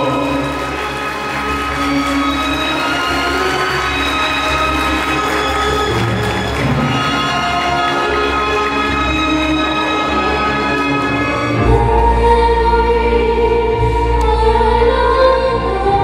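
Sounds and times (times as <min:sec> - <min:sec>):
music with sustained chords: 0:00.0 - 0:16.0.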